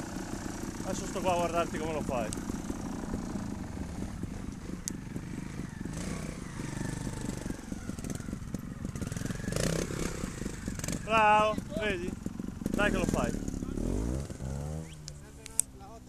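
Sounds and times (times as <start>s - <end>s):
motorcycle engine at low revs: 0.0s - 16.0s.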